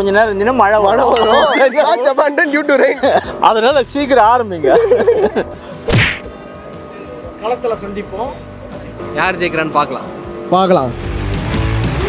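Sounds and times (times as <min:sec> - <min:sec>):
background music with held tones: 0:00.0 - 0:12.0
loud whack with deep thud: 0:05.8 - 0:06.3.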